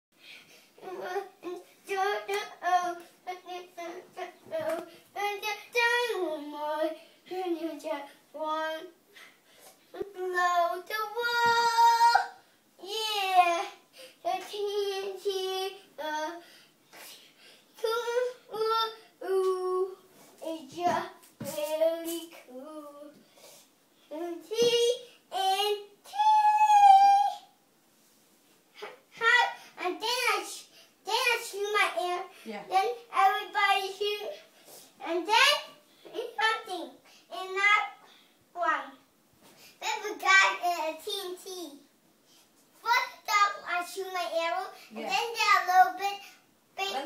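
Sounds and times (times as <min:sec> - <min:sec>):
boy singing: 0:00.8 - 0:09.0, 0:09.9 - 0:13.7, 0:17.8 - 0:23.2.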